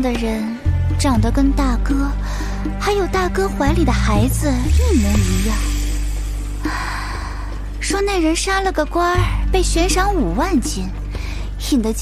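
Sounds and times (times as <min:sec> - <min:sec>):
woman speaking: 0:00.0 - 0:02.2, 0:02.8 - 0:05.9, 0:06.7 - 0:12.0.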